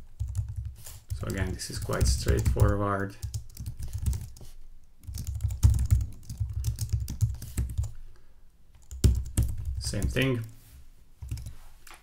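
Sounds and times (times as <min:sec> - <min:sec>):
computer keyboard typing: 0:00.2 - 0:08.0, 0:08.8 - 0:10.3, 0:11.2 - 0:11.5.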